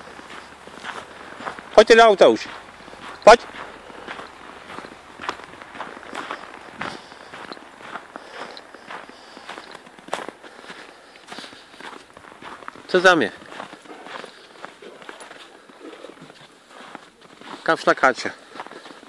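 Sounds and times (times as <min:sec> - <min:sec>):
footsteps crunching on snow: 0:00.0 - 0:19.0.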